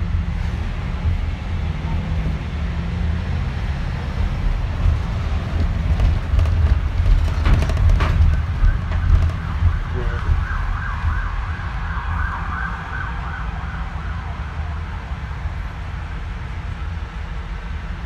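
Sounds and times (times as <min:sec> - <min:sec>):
bus engine and road rumble: 0:00.0 - 0:18.0
knocks and rattles: 0:04.7 - 0:10.4
wavering siren: 0:08.2 - 0:15.3.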